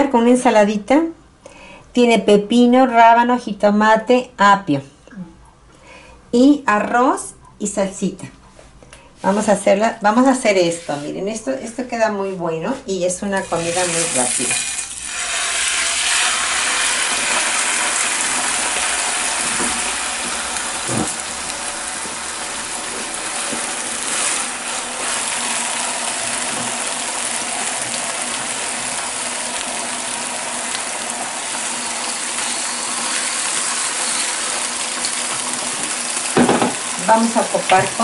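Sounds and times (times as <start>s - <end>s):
chicken sizzling in a frying pan: 13.4s - 38.0s.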